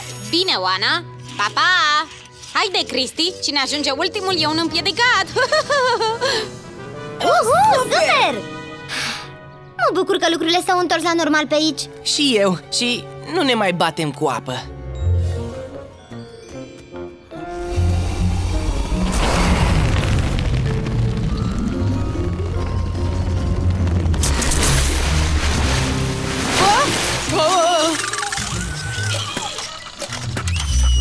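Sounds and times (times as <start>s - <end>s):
cartoon soundtrack music: 3.8s - 31.0s
water rushing and rumbling in hose: 17.5s - 30.4s
wavering warbling sounds: 20.9s - 30.1s.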